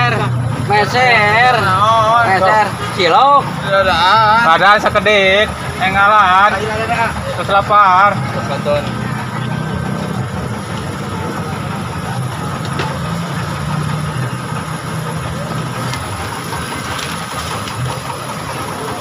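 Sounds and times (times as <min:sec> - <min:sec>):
faint voices: 0:00.0 - 0:19.0
low engine hum: 0:00.0 - 0:19.0.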